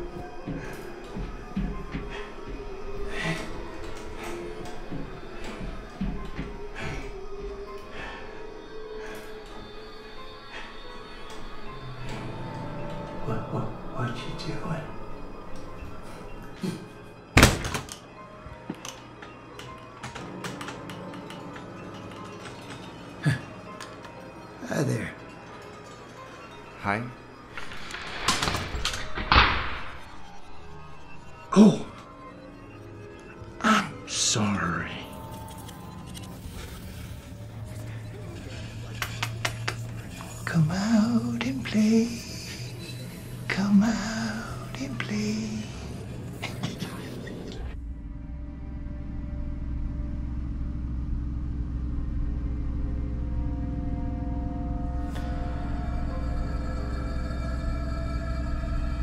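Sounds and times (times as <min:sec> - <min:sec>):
faint background music: 0:00.0 - 0:59.0
horror film score drone: 0:00.0 - 0:59.0.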